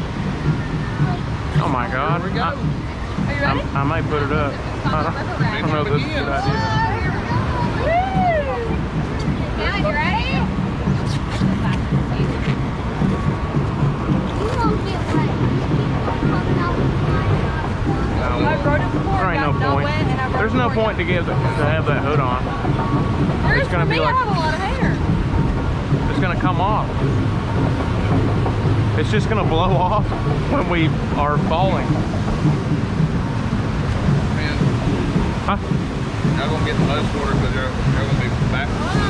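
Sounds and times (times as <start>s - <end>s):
indistinct voices: 0.0s - 39.0s
knocks or splashes: 0.0s - 39.0s
rushing water: 0.0s - 39.0s
wind on microphone: 0.0s - 39.0s.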